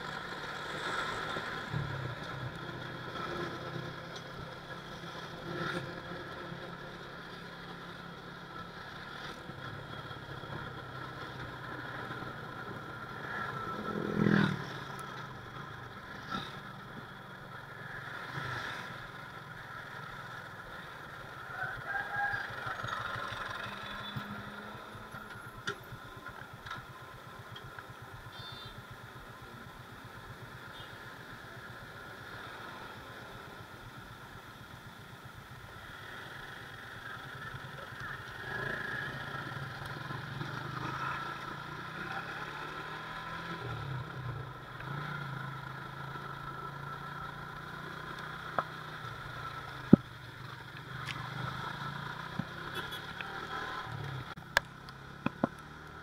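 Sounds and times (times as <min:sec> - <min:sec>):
road noise: 0:00.0 - 0:56.0.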